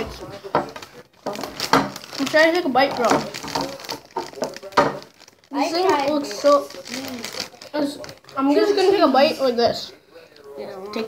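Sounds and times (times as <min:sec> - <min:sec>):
boy talking: 0:02.2 - 0:03.3, 0:05.5 - 0:09.9, 0:10.6 - 0:11.0.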